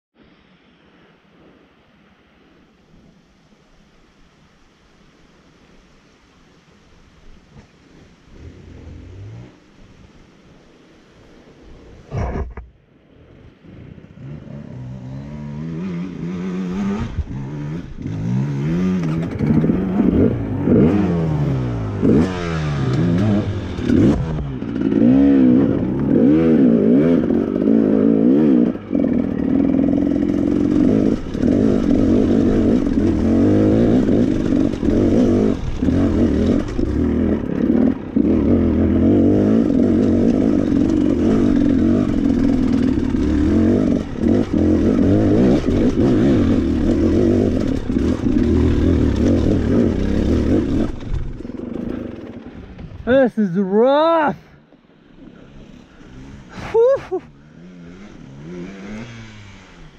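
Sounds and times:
dirt bike engine revving: 0:13.9 - 0:54.3, 0:55.0 - 0:59.9.

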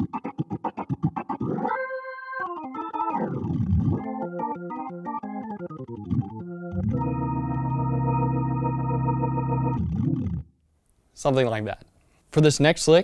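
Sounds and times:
organ chords and glissando: 0:00.0 - 0:10.5.

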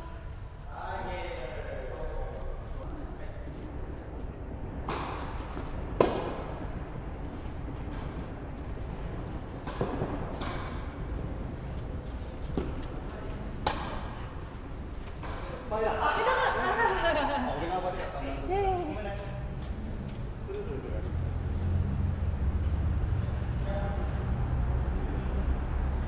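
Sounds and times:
tennis balls bouncing on court: 0:04.8 - 0:06.6, 0:09.2 - 0:15.7
tennis balls struck by rackets: 0:04.8 - 0:06.7, 0:09.2 - 0:15.7.

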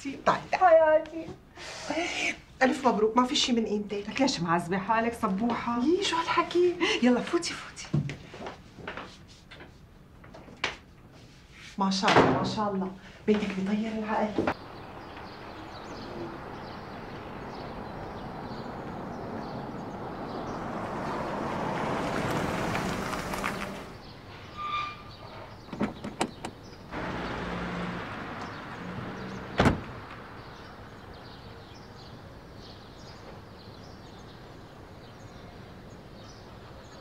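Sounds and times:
car driving by: 0:14.6 - 0:24.0, 0:26.9 - 0:31.8
car door slamming: 0:27.0 - 0:30.3
car door latch clicks: 0:29.6 - 0:30.0.

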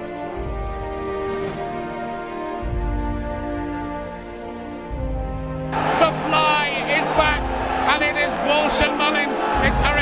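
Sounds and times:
background music: 0:00.0 - 0:10.0
crowd noise: 0:05.7 - 0:10.0.

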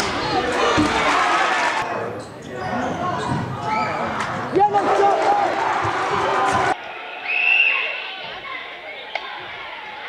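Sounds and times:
spectators' voices and calls: 0:00.0 - 0:10.0.

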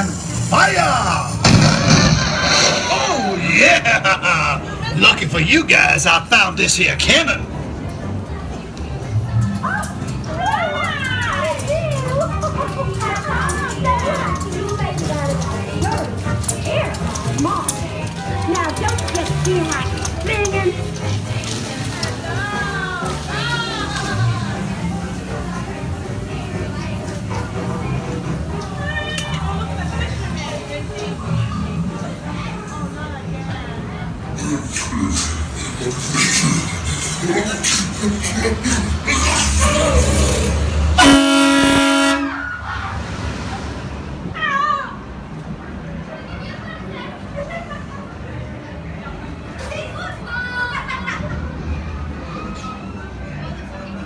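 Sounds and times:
theme park ride music over speakers: 0:00.0 - 0:01.5, 0:02.5 - 0:43.7
buzzy horn-like blast: 0:01.4 - 0:03.5, 0:41.0 - 0:42.4.

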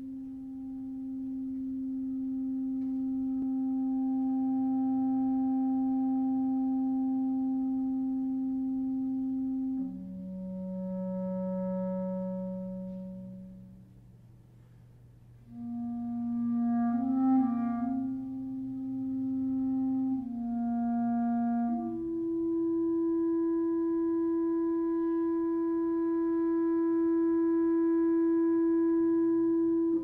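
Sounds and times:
clarinet holding long notes: 0:00.0 - 0:14.3, 0:15.4 - 0:30.0.

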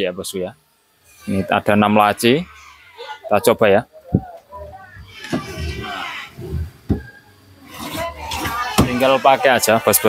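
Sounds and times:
wooden drawers sliding: 0:05.1 - 0:07.0.

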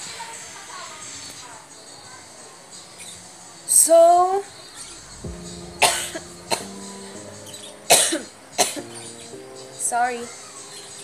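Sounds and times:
background music with held notes: 0:04.9 - 0:11.0
woman coughing: 0:07.9 - 0:08.8.

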